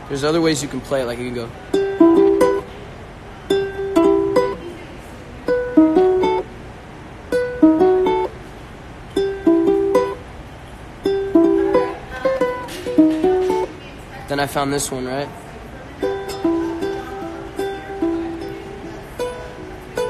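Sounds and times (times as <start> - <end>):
ukulele picked phrases: 0.0 - 10.4, 11.0 - 14.9, 15.8 - 20.0.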